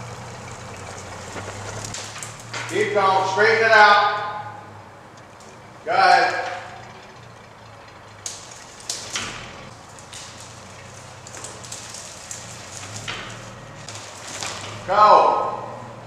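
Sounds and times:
trailer crackling over leaves: 0.0s - 16.0s
vehicle engine hum: 0.0s - 16.0s.

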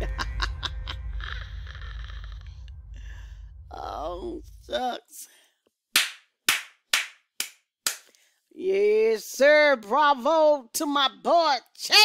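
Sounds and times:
person clapping hands: 6.0s - 8.1s.

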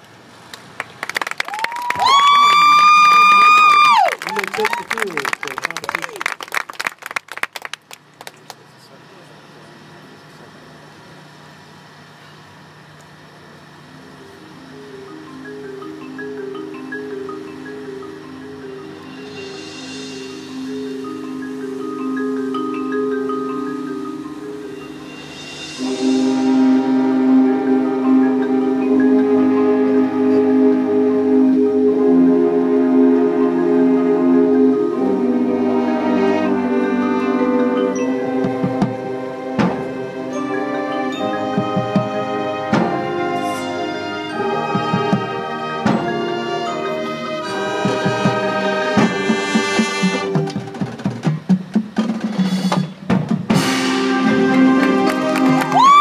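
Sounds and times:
marching band playing: 14.1s - 56.0s
drums and percussion: 14.2s - 29.6s, 37.8s - 56.0s
brass chords: 17.2s - 51.0s, 53.5s - 55.8s.

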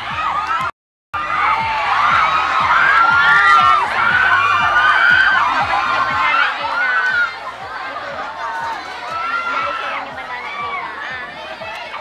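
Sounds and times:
crowd cheering and shrieking: 0.0s - 12.0s.

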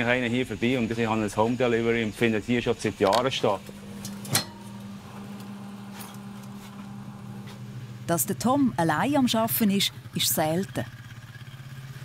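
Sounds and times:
low electrical hum: 0.0s - 10.8s.

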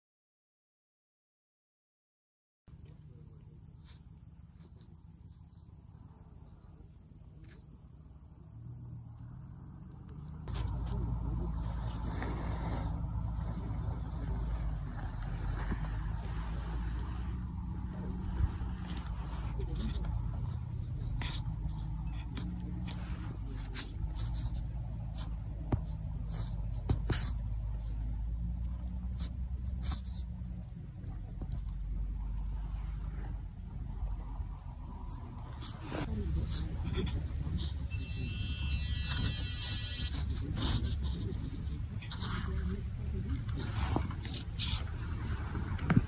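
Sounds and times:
low vehicle rumble: 2.7s - 46.0s.

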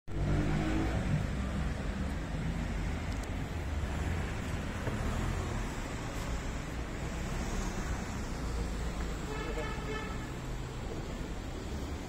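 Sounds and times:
car engine rumble: 0.1s - 12.0s.

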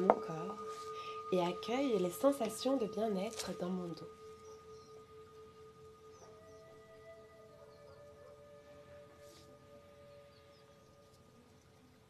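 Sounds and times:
higher sustained tone: 0.0s - 12.0s
meditation music drone tones: 0.0s - 12.0s.

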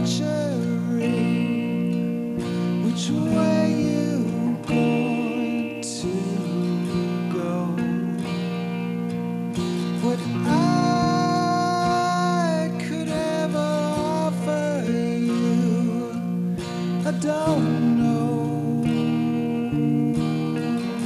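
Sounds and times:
man singing: 0.0s - 8.8s, 9.6s - 19.8s
strummed acoustic guitar: 0.0s - 21.0s.

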